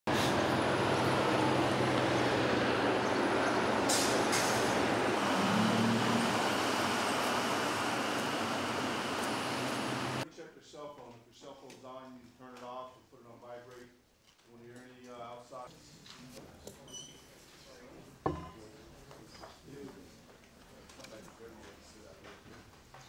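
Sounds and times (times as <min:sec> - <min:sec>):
large vehicle engine hum: 0:00.1 - 0:10.2
street traffic: 0:00.1 - 0:10.2.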